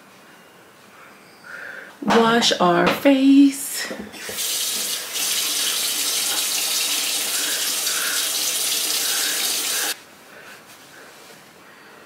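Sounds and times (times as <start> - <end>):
sink faucet running: 4.2 - 10.0.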